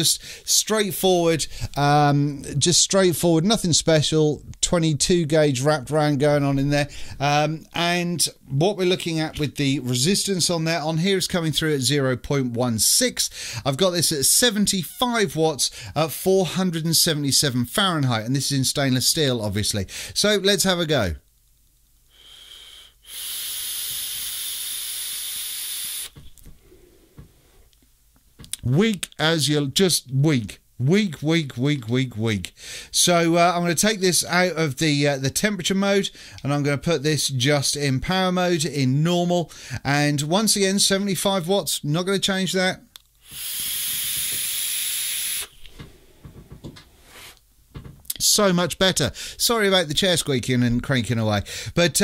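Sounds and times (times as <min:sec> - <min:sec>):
hiss of air through vape: 0:22.1 - 0:27.7, 0:43.2 - 0:46.3, 0:47.0 - 0:47.4.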